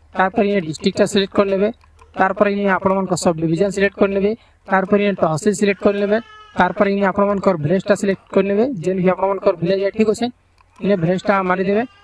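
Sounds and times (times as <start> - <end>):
man narrating: 0.1 - 12.0.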